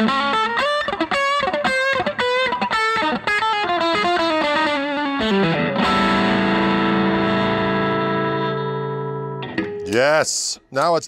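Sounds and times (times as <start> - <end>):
electric guitar chord ringing: 0.0 - 9.9.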